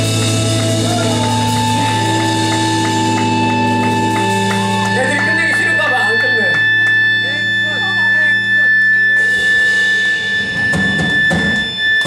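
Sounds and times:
rock band playing loudly: 0.0s - 12.0s
steady high tone: 0.0s - 12.0s.

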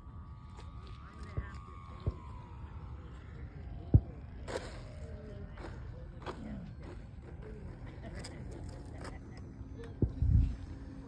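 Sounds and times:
faint distant voices: 0.0s - 11.0s
wind rumbling on microphone: 9.9s - 11.0s.

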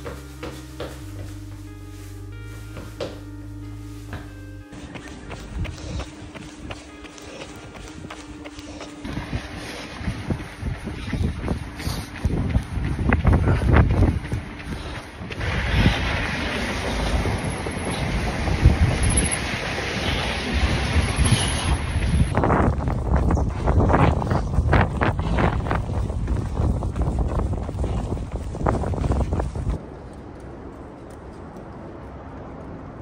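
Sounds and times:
running footfalls: 0.0s - 29.8s
outdoor background noise: 0.0s - 33.0s
wind buffeting microphone: 5.2s - 6.7s, 9.0s - 33.0s.

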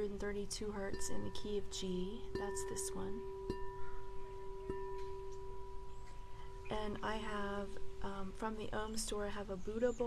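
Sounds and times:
singing bowl ringing: 0.0s - 9.2s
singing bowl tapped: 0.9s - 6.5s.

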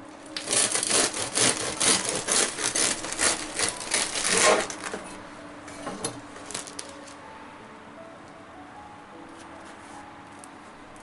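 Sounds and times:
bread knife sawing through loaf: 0.4s - 4.9s.

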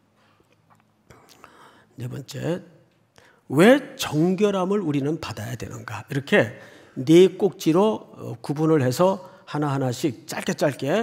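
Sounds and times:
faint breathing: 1.1s - 2.0s, 3.1s - 3.5s, 6.6s - 7.0s.

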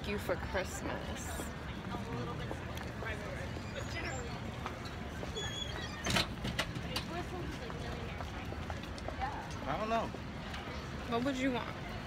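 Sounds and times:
faint murmured voices: 0.0s - 12.0s
footsteps on sidewalk: 0.0s - 12.0s.

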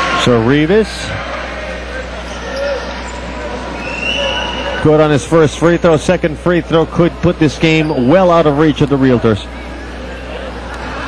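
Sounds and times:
arena crowd murmur: 0.0s - 11.0s.

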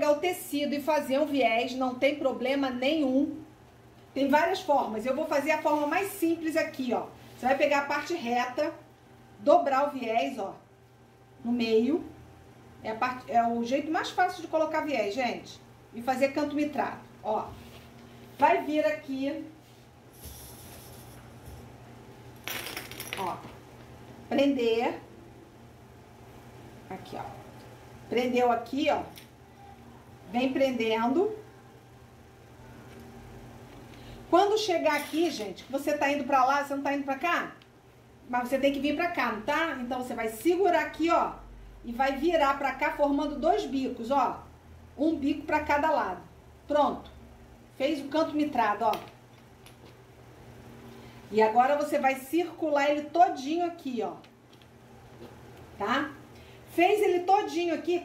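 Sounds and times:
faint low steady hum: 0.0s - 58.0s.

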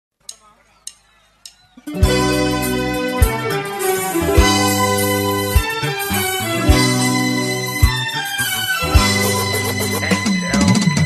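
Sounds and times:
percussion clicks counting in: 0.2s - 2.1s
karaoke backing track: 0.3s - 11.0s.

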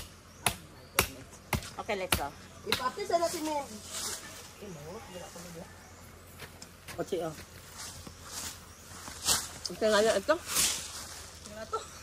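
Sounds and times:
machete chopping coconut: 0.0s - 3.1s.

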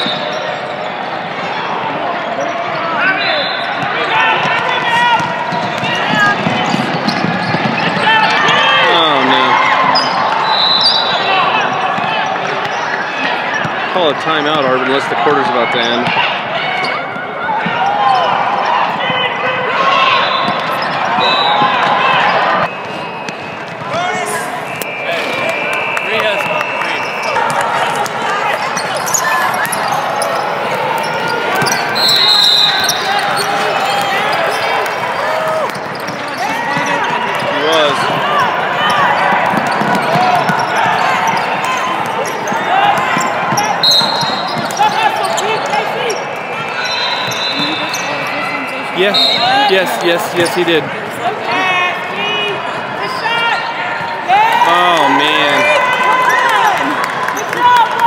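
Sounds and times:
voices of players and spectators: 0.0s - 58.0s.

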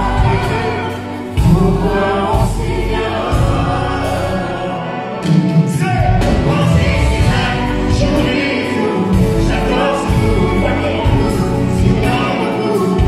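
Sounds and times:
heavy bass: 0.0s - 4.7s, 5.6s - 12.2s
orchestra playing: 0.0s - 13.0s
man singing into a microphone: 8.8s - 13.0s.

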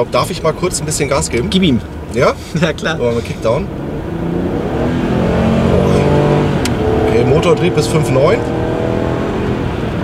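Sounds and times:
car engine revving under acceleration: 0.0s - 10.0s.

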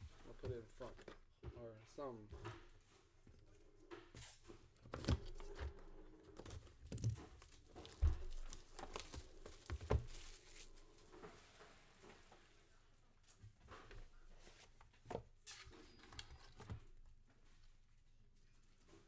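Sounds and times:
packaging rustling and tearing: 6.4s - 10.9s.

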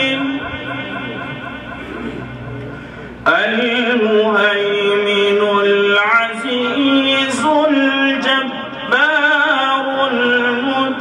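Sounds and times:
low public address hum: 0.0s - 11.0s.

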